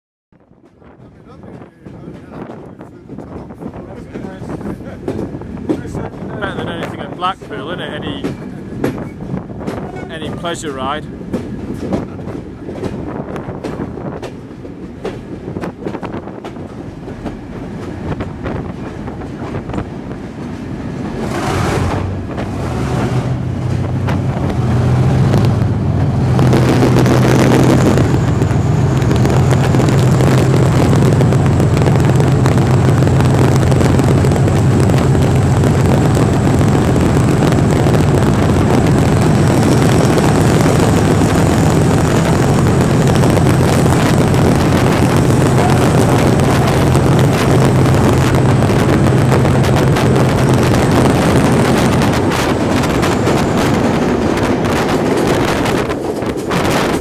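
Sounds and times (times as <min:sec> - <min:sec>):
train rumbling in tunnel: 0:00.4 - 0:57.0
train wheels clicking over rail joints: 0:01.4 - 0:27.0, 0:27.7 - 0:57.0.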